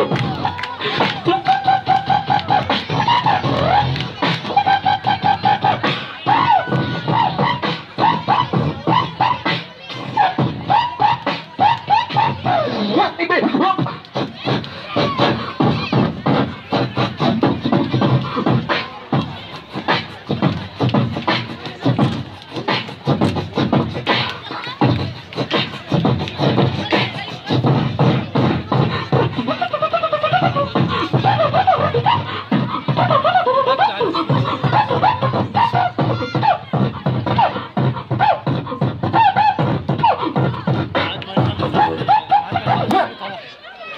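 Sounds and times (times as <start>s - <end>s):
beatboxing: 0.0s - 43.5s
pitched vocal line: 0.0s - 43.9s.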